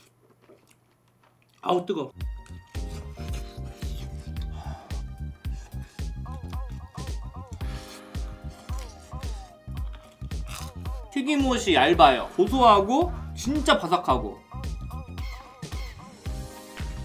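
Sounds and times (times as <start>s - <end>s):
music with steady beat: 2.2s - 17.0s.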